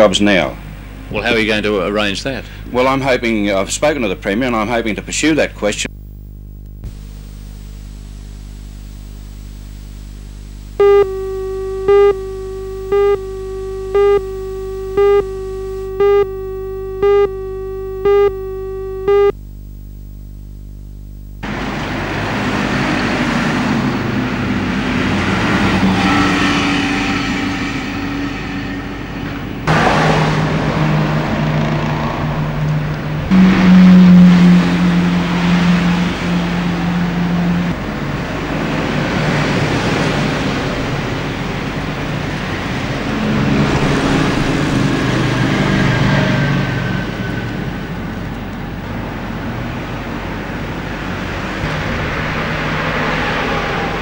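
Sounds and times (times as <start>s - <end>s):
loud low engine hum: 9.7s - 19.3s, 21.4s - 54.0s
car engines running: 10.3s - 19.3s, 21.4s - 26.4s, 29.0s - 54.0s
cars passing: 21.4s - 48.2s, 49.0s - 54.0s.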